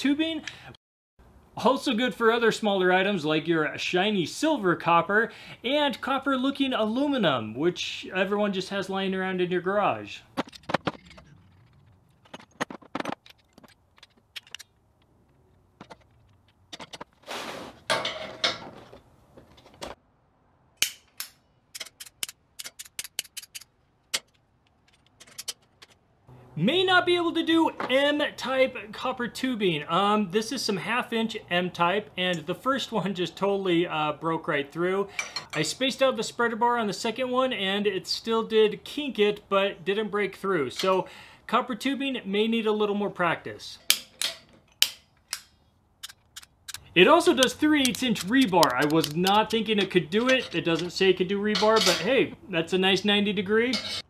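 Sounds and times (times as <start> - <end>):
sharp metallic clicks and knocks: 10.3 - 17.1, 20.8 - 26.1, 43.8 - 52.1
metal parts clattering and scraping: 10.3 - 20.0, 21.7 - 26.1, 46.0 - 52.3, 53.7 - 54.0.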